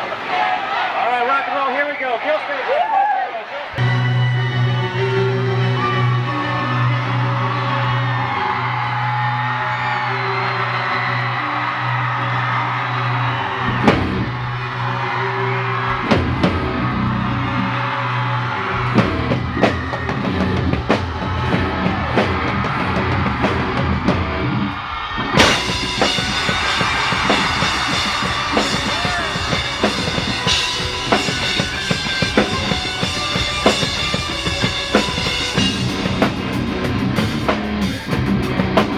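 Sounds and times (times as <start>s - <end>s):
rock band playing live: 3.7s - 38.9s
drums playing a steady beat: 13.6s - 14.7s, 15.9s - 16.9s, 18.7s - 24.6s, 25.2s - 38.9s.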